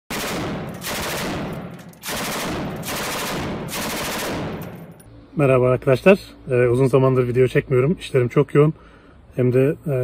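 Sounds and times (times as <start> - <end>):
automatic gunfire bursts: 0.1 - 4.7.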